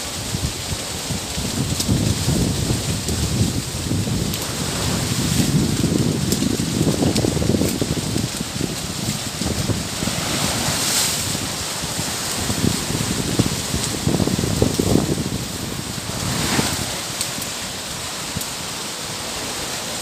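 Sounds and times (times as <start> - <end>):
wind buffeting microphone: 0.0 - 18.7
steady hiss: 6.8 - 20.0.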